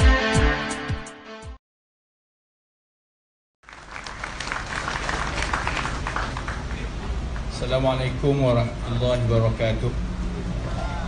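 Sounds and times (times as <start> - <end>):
audience applauding: 3.6 - 7.5
steady low hum: 3.8 - 11.0.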